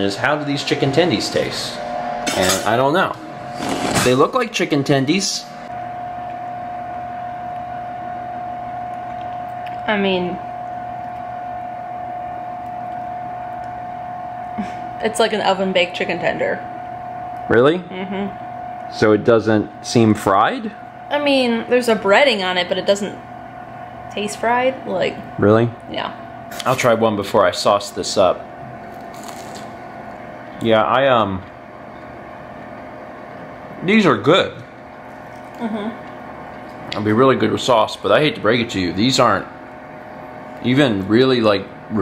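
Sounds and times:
man speaking: 0:00.0 - 0:01.8, 0:17.5 - 0:17.9, 0:25.4 - 0:25.8, 0:26.6 - 0:28.4, 0:37.0 - 0:39.5
air fryer fan humming: 0:00.0 - 0:42.0.

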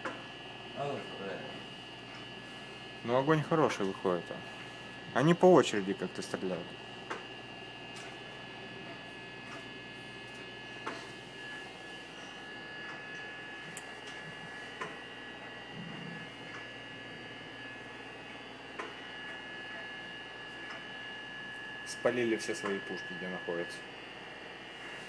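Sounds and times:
steady hum: 0:00.0 - 0:25.0.

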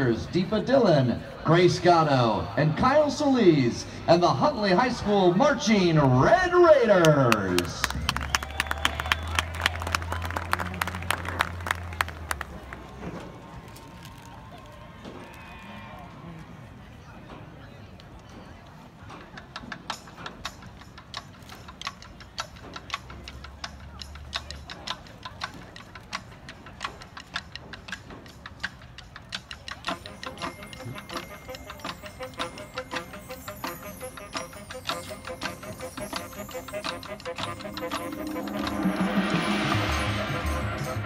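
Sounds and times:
percussion ticking: 0:19.2 - 0:41.0
marching band music: 0:29.8 - 0:41.0.

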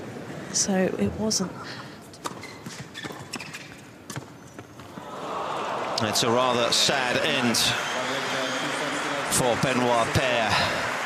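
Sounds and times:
tennis ball bouncing on court: 0:02.2 - 0:05.0
crowd applause and cheering: 0:05.0 - 0:11.0.

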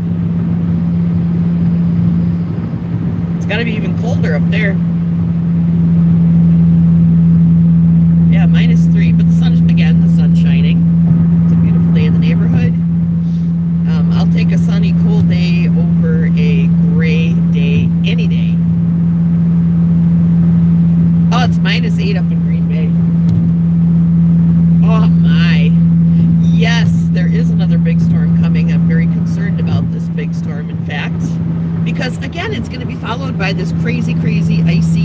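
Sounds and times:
car cabin engine and road hum: 0:00.0 - 0:35.0.

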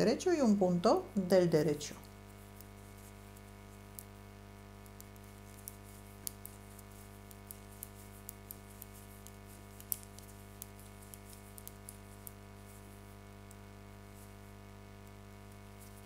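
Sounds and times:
knitting needles clicking: 0:04.8 - 0:12.4.

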